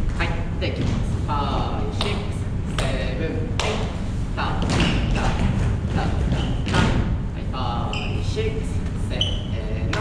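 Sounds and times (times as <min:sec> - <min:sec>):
man talking: 0:00.0 - 0:10.0
steady low rumble: 0:00.0 - 0:10.0
irregular thuds: 0:03.6 - 0:07.3.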